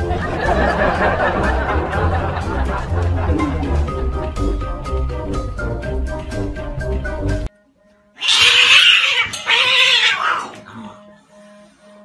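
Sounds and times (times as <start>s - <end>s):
cat giving harsh raspy calls: 8.2s - 10.7s.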